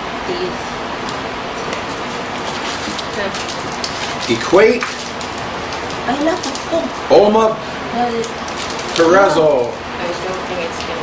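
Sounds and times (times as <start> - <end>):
cardboard and packaging rustling: 1.6 - 7.3, 8.0 - 11.0.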